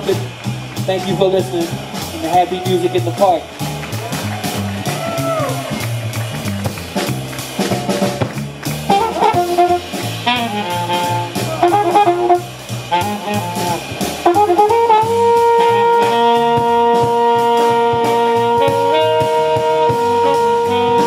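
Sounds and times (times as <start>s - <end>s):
trumpet: 0.0s - 8.1s, 8.8s - 21.0s
drum kit with cymbals: 0.0s - 21.0s
upright bass walking: 0.0s - 21.0s
tenor saxophone: 8.8s - 21.0s.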